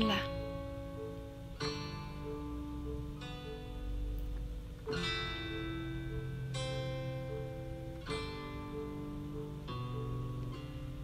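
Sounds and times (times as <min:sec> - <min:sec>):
plucked-string chords: 0:00.0 - 0:11.0.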